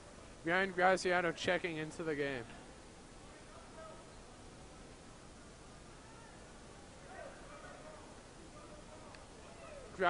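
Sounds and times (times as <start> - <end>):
crowd murmur in gymnasium: 0.0 - 10.0.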